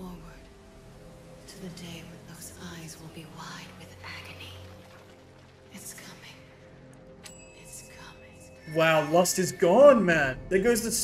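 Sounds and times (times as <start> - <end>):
woman whispering: 7.6 - 8.6.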